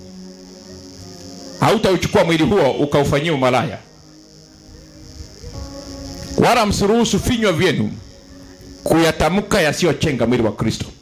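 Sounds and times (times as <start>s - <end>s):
soft keyboard chords: 0.0s - 10.6s
high-pitched hiss: 0.0s - 11.0s.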